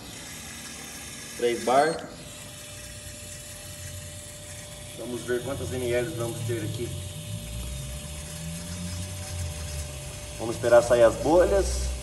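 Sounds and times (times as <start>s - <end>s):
test bench pump hum: 0.0s - 12.0s.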